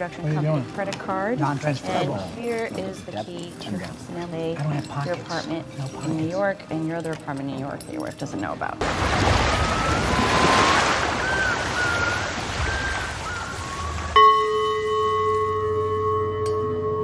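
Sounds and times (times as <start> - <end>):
surf washing onto shore: 8.8 - 14.2
faint gliding whistles: 9.5 - 15.4
ringing bell-like tone: 14.1 - 17.0.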